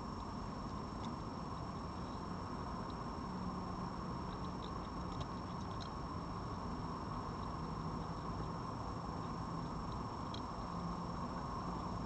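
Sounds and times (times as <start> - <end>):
steady hiss and low hum: 0.0 - 12.0.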